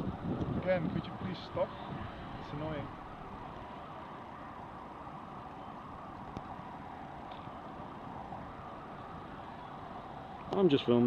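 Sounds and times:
low outdoor hum: 0:00.0 - 0:11.0.

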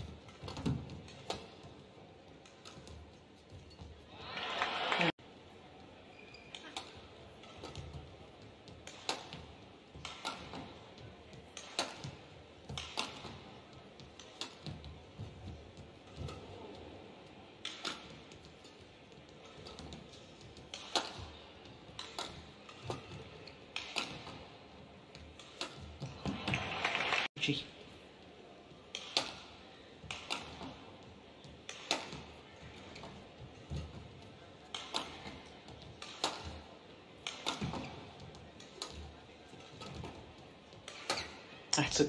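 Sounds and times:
racquets hitting shuttlecock: 0:00.0 - 0:41.7.

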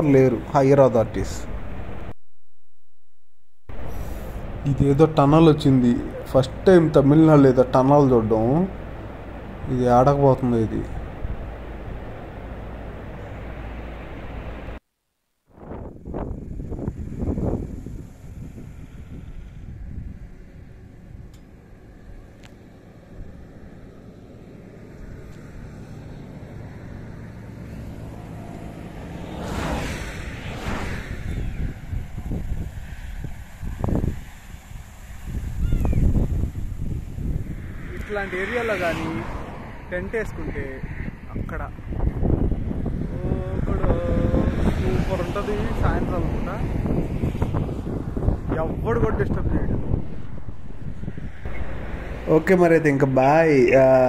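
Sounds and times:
road noise: 0:00.0 - 0:02.6, 0:03.2 - 0:54.0
wind buffeting microphone: 0:15.5 - 0:24.0, 0:25.0 - 0:54.0
motorcycle passing: 0:15.6 - 0:54.0.

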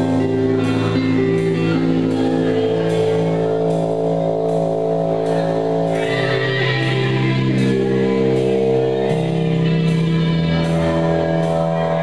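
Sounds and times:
rock band droning chord: 0:00.0 - 0:12.0.

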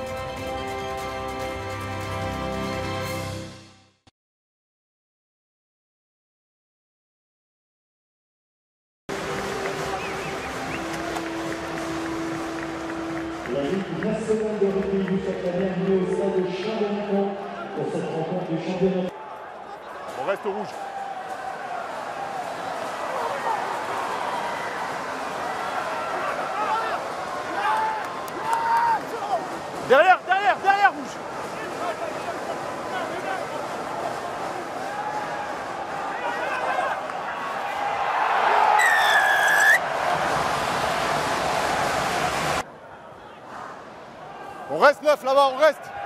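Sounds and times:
crowd cheering: 0:09.1 - 0:46.0
stadium crowd noise: 0:09.1 - 0:46.0
players shouting: 0:19.1 - 0:40.4
referee's whistle: 0:38.8 - 0:39.8.

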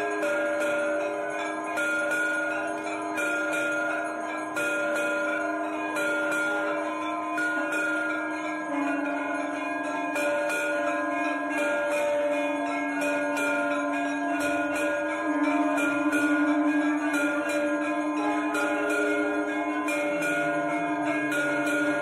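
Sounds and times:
temple bells ringing: 0:00.0 - 0:22.0
steady low held tone: 0:13.6 - 0:22.0.

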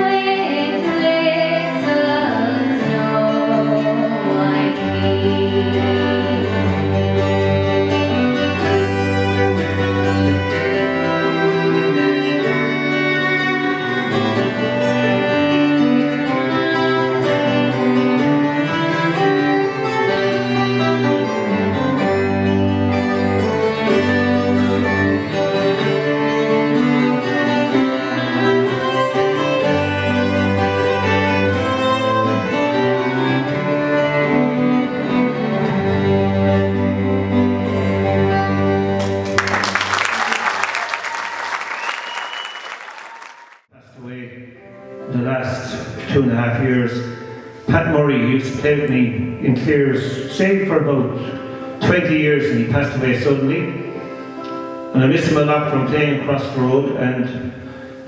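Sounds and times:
cello: 0:00.0 - 0:40.1
fiddle: 0:00.0 - 0:40.4, 0:43.7 - 0:58.0
audience applause: 0:39.0 - 0:43.7.

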